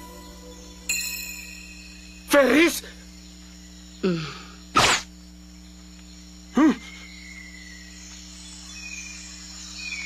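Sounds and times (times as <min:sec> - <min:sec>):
faint insect-like chirps: 0:00.0 - 0:10.0.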